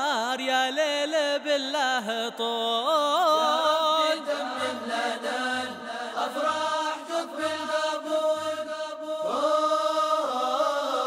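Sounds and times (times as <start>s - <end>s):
group of voices singing: 3.3s - 11.0s.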